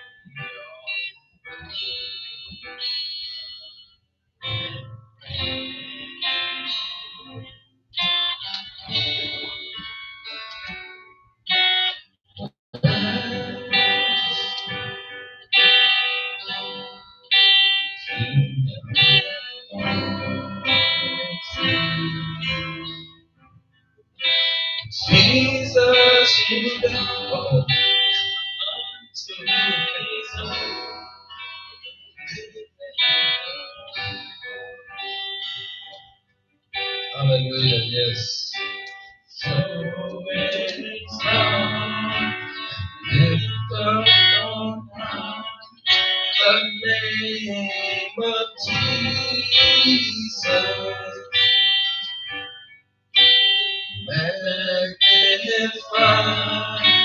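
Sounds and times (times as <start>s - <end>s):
electric guitar softly picked: 4.4s - 23.6s, 24.2s - 36.0s, 36.8s - 52.6s.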